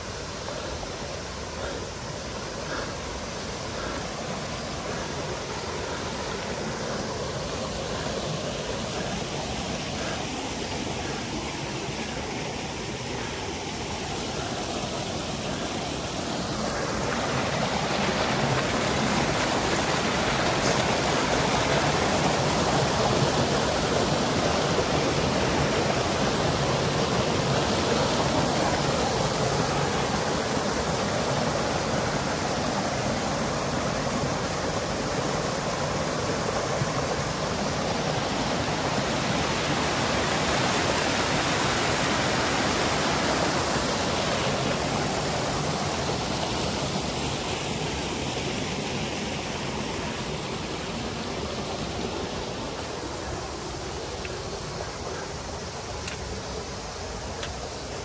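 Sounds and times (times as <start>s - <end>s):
water rushing over rocks: 0.0s - 58.0s.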